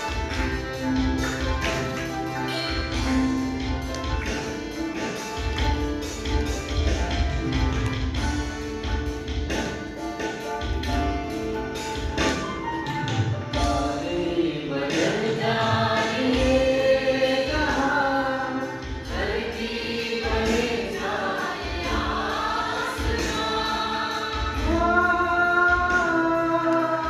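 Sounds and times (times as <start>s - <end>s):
tabla drum strokes: 0.0s - 14.1s
harmonium: 0.0s - 27.0s
men and women singing together: 13.7s - 27.0s.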